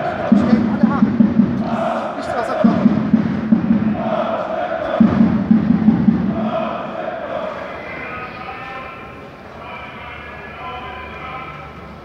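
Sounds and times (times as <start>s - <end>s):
low drum roll: 0.0s - 7.0s.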